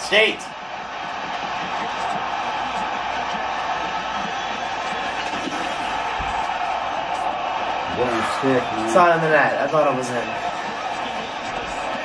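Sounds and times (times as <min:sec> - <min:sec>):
arena crowd noise on tv: 0:00.0 - 0:12.0
faint broadcast commentary: 0:07.9 - 0:12.0.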